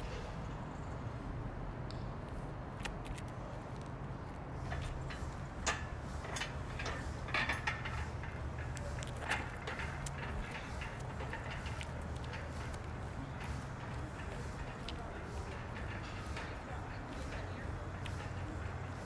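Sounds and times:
low outdoor rumble: 0.0s - 19.0s
steel yoke clanking: 4.6s - 19.0s.

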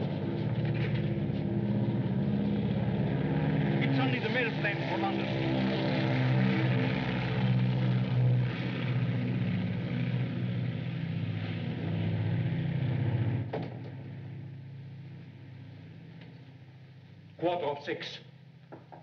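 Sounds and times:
propeller aircraft engines droning: 0.0s - 19.0s.

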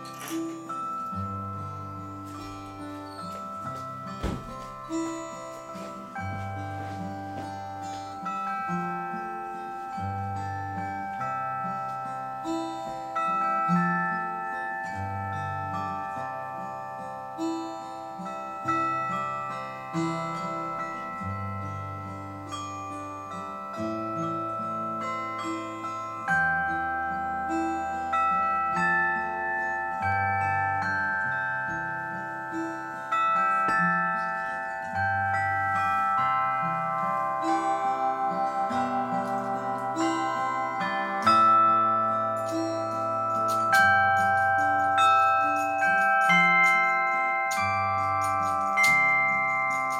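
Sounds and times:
classical guitar: 0.0s - 49.9s
tuned metal plates struck: 0.0s - 49.9s.

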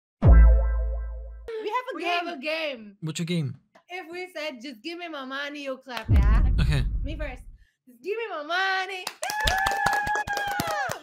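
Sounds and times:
electronic bass drop boom: 0.2s - 1.5s, 6.1s - 7.5s.

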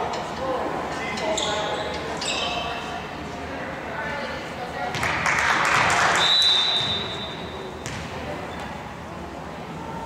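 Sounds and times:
volleyball bouncing on wooden floor: 7.8s - 8.1s.

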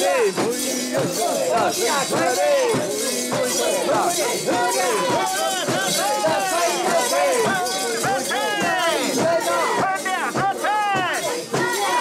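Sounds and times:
group chanting and shouting: 0.0s - 12.0s.

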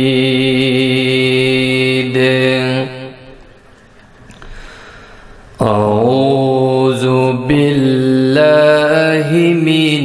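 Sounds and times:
man reciting melodically: 0.0s - 3.4s, 5.6s - 10.0s
echo in hall: 0.0s - 10.0s.

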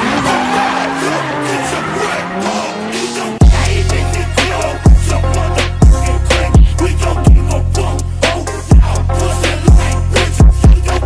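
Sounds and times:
tyres squealing: 0.0s - 3.4s
car engine revving: 0.0s - 7.1s
bass-heavy music beat: 2.9s - 11.0s.

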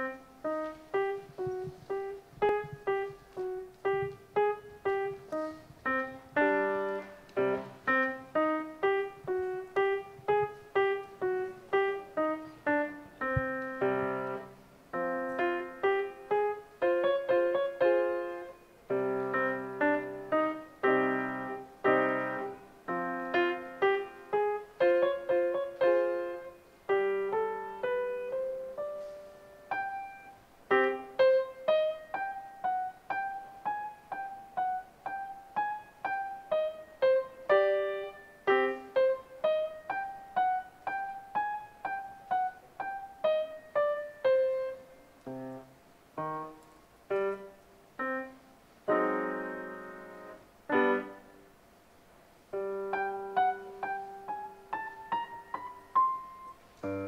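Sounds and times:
solo grand piano melody: 0.0s - 57.0s.

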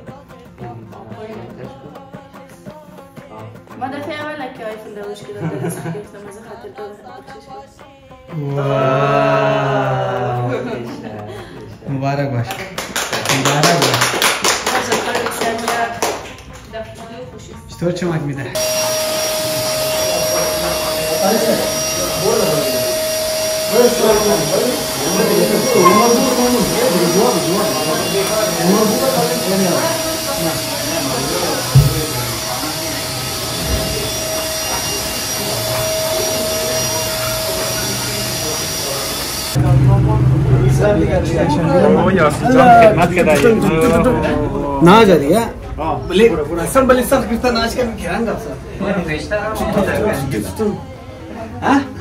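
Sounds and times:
voices: 0.0s - 12.1s, 18.6s - 52.0s
people clapping: 0.0s - 17.6s, 19.4s - 39.4s
vacuum cleaner running: 18.6s - 40.4s.

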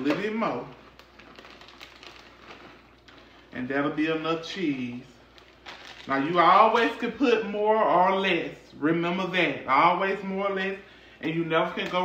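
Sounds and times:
cheese shaken from plastic bag: 0.2s - 3.4s, 5.2s - 6.7s.

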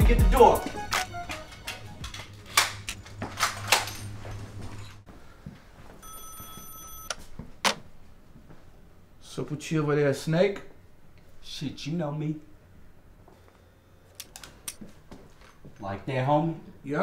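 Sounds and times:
electronic ringing tone: 6.0s - 7.2s.

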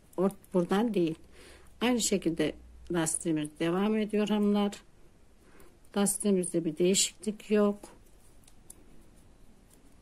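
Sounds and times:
knitting needles ticking and scraping: 0.0s - 1.2s, 5.8s - 10.0s.

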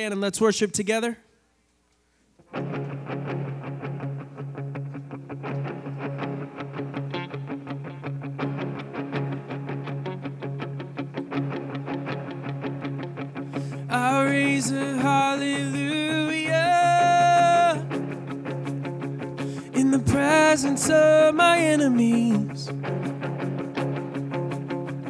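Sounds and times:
electric guitar picked pattern: 2.4s - 25.0s.

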